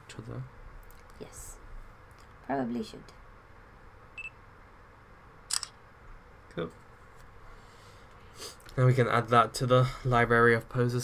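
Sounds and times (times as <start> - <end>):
camera shutter double click: 5.5 - 5.8.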